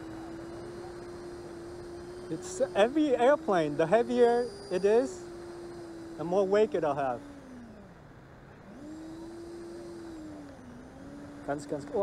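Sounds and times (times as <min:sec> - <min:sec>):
rc jet whine: 0:00.0 - 0:12.0.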